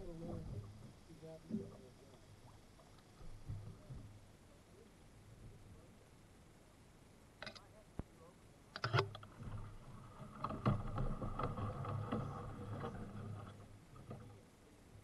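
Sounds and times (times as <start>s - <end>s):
canoe hull grinding over rocks: 9.1s - 14.4s.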